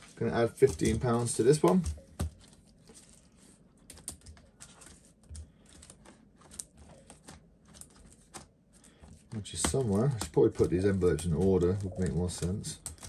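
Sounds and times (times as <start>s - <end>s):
plastic pages flipping: 0.0s - 13.0s.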